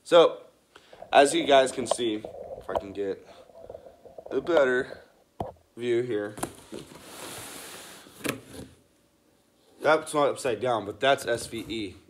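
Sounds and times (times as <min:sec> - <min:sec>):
cardboard box scraping: 0:06.6 - 0:08.1.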